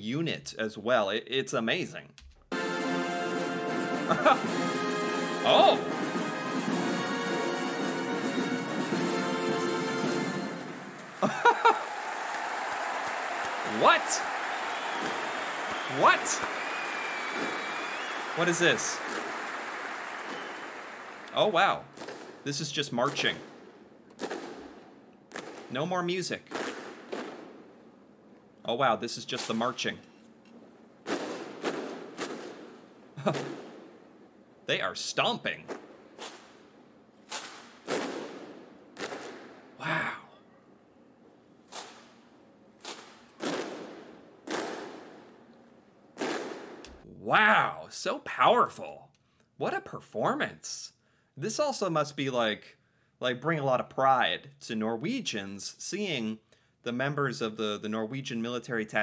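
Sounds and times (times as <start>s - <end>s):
audience applause: 10.8s - 21.8s
boot stomps and rifle slaps: 22.0s - 22.4s, 23.1s - 25.7s, 26.5s - 27.6s, 31.0s - 33.7s, 35.7s - 39.5s, 42.8s - 45.2s, 46.2s - 47.0s.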